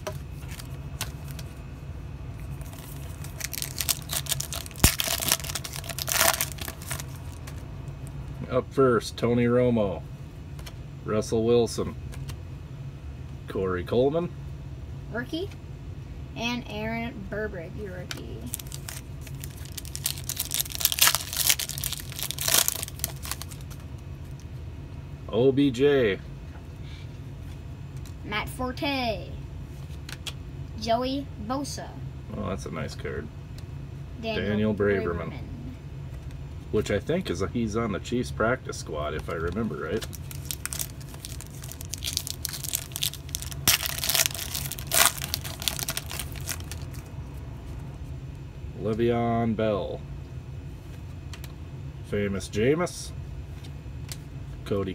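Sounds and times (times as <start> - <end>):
trading cards rustling: 0.0 - 1.6, 2.4 - 7.6, 18.4 - 24.4, 39.1 - 47.1
foil wrapper tearing and crinkling: 2.6 - 7.6, 18.5 - 23.8, 39.3 - 47.1.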